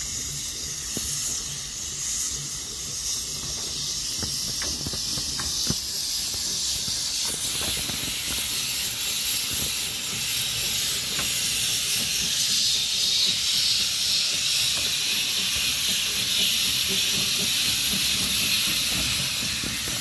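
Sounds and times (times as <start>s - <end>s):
steam locomotive hissing: 0.0s - 20.0s
wheels clicking on track: 0.0s - 20.0s.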